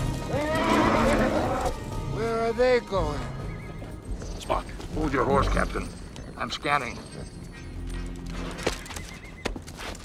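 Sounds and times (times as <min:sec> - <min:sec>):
horses neighing: 0:00.0 - 0:01.9
hooves clopping: 0:00.0 - 0:10.0.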